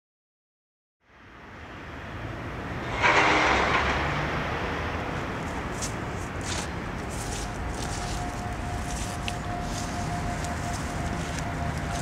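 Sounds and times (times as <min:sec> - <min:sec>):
low urban rumble: 0:01.0 - 0:12.0.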